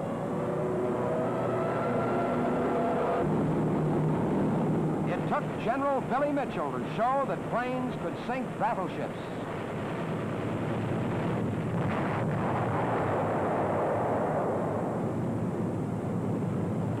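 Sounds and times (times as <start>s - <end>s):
airplane engine roar: 0.0s - 17.0s.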